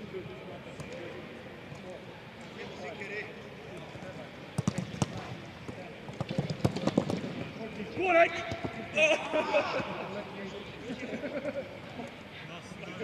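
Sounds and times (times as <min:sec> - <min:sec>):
footballs being kicked: 0:04.6 - 0:07.4.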